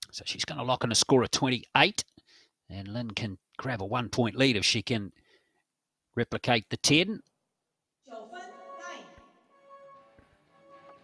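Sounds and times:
faint sustained music tones: 8.1 - 11.0.

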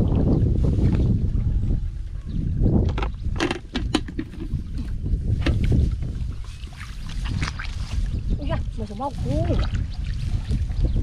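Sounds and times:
wind rumbling on microphone: 0.0 - 11.0
footsteps sloshing through water: 4.4 - 11.0.

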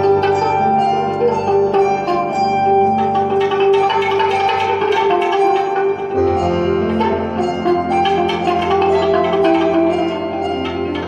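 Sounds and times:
plucked electric guitar notes: 0.0 - 11.0.

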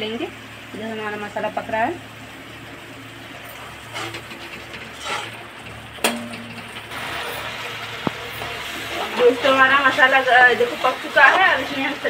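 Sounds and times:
onions sizzling in a pan: 6.7 - 12.0.

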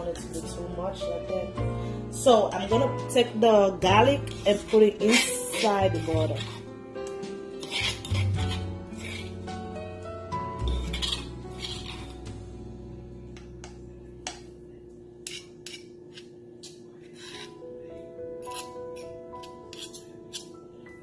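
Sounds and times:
background music: 0.0 - 15.4, 17.2 - 21.0
metal spoon scraping stone mortar: 3.8 - 9.6, 10.4 - 12.4, 15.2 - 17.6, 18.4 - 20.6.

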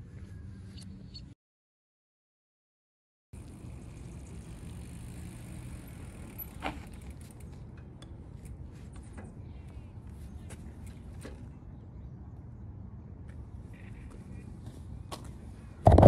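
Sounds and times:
low outdoor rumble: 3.4 - 16.0.

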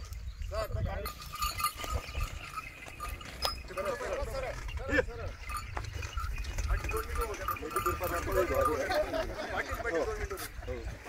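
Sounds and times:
wind rumble on microphone: 0.0 - 11.0
men talking: 0.5 - 11.0.

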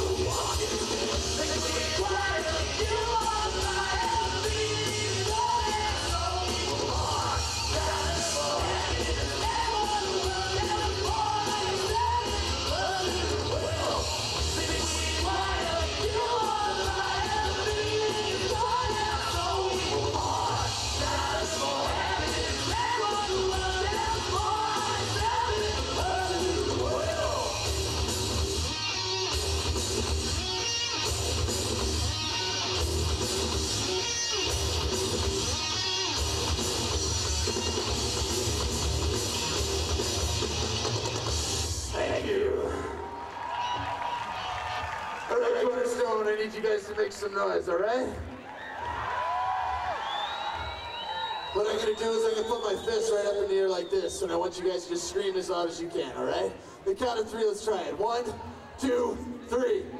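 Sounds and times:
person singing: 0.0 - 27.6
heavy metal band playing live: 0.0 - 42.2.

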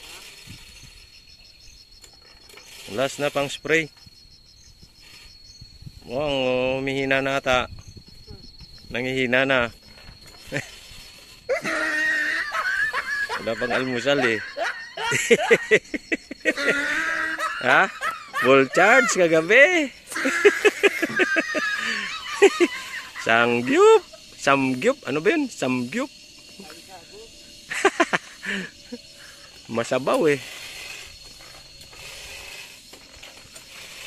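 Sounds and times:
high insect trill: 0.0 - 34.0
person crying out drawn-out: 11.5 - 15.7, 16.5 - 19.4, 20.1 - 23.8
person laughing: 11.5 - 19.5, 20.1 - 24.2, 27.7 - 29.0
person speaking: 13.3 - 15.8.

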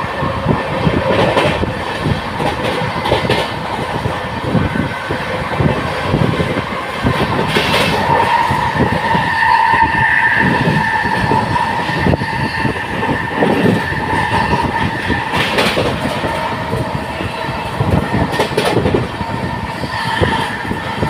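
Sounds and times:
train rumble and wheel clatter: 0.0 - 21.0
sharp rail clacks: 2.4 - 3.9, 7.1 - 9.2, 13.4 - 16.9, 17.9 - 19.1.

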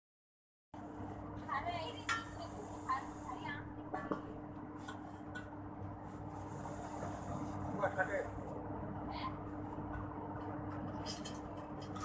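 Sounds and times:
steady low hum: 0.8 - 12.0.

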